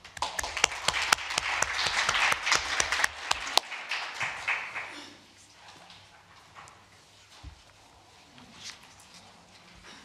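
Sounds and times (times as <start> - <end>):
laptop and book handling noise: 6.6 - 9.8.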